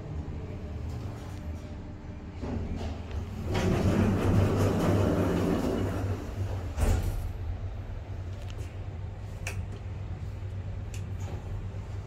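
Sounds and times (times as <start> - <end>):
lift low hum: 0.0 - 12.0
lift door clunk: 2.4 - 7.4.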